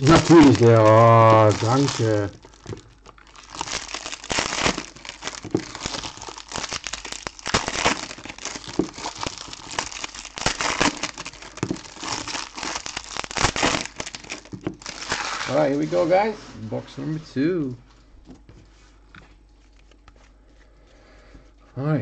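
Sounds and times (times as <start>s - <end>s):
foil wrappers crinkling: 0.0s - 16.2s, 19.6s - 20.8s.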